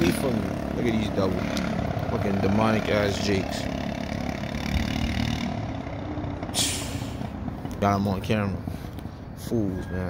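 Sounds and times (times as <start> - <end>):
rumble of vehicle engines: 0.0 - 10.0
short hiss: 6.6 - 7.2.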